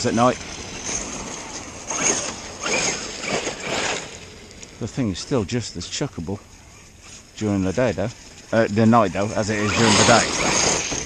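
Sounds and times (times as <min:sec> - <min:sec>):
electric motor whining: 0:00.0 - 0:05.4, 0:06.6 - 0:11.0
tyres scrubbing on rough ground: 0:00.0 - 0:11.0.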